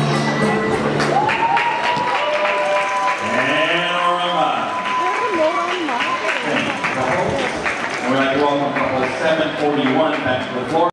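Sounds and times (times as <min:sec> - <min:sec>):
rumba music: 0:00.0 - 0:02.1
audience applauding: 0:01.0 - 0:10.9.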